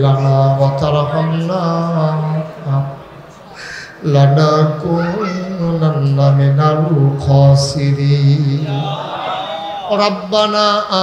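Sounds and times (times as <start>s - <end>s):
man chanting in sung notes: 0.0s - 3.0s, 4.0s - 8.8s.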